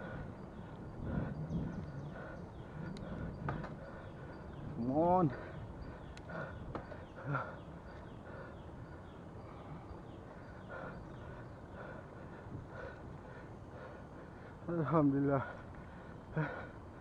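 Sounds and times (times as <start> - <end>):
wind noise: 0.0 - 7.1
bicycle rolling on concrete: 0.0 - 17.0.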